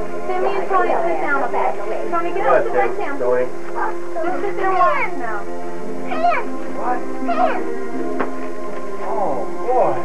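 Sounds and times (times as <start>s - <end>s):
background music with held notes: 0.0s - 10.0s
children crying out excitedly: 3.9s - 5.2s, 6.0s - 6.6s, 7.2s - 7.8s.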